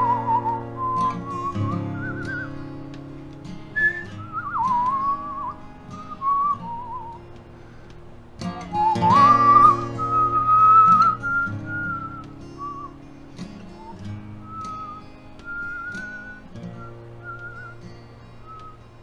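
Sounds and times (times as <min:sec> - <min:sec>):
man whistling a melody: 0:00.0 - 0:02.7, 0:03.7 - 0:07.3, 0:08.4 - 0:19.0
acoustic guitar strumming: 0:00.0 - 0:19.0.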